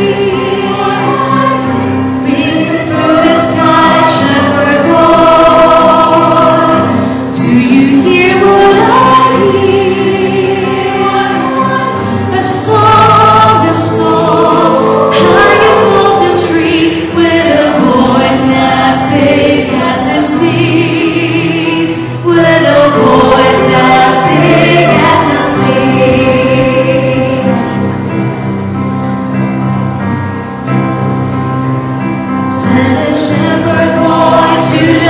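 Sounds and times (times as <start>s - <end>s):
woman singing with vibrato: 0.0s - 27.8s, 32.5s - 35.0s
choir singing: 0.0s - 27.9s, 32.4s - 35.0s.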